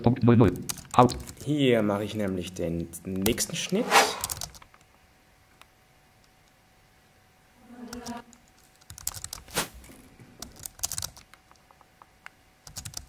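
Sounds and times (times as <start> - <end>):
computer keyboard keys clacking: 8.8 - 9.4, 10.4 - 11.8, 12.6 - 13.0.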